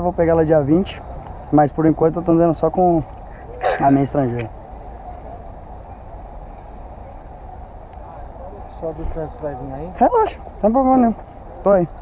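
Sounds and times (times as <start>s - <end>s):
faint insect chirps: 0.0s - 12.0s
high-pitched insect drone: 0.0s - 12.0s.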